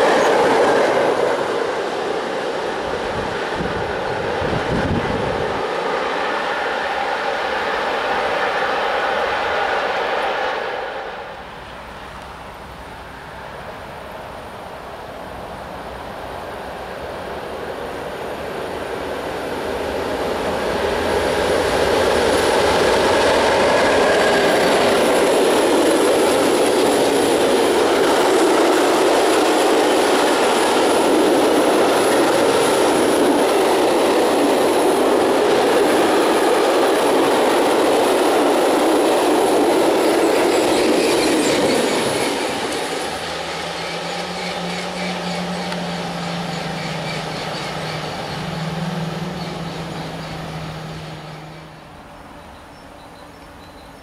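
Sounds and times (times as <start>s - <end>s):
freight train wheels rumbling: 0.0s - 54.0s.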